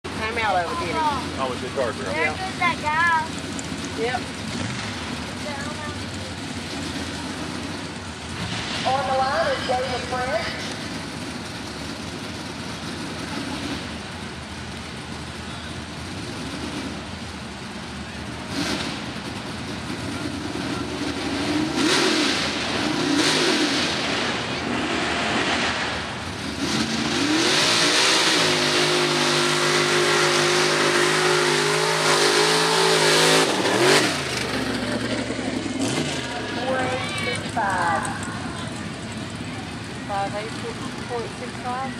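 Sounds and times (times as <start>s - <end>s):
truck engine revving: 0.0s - 41.9s.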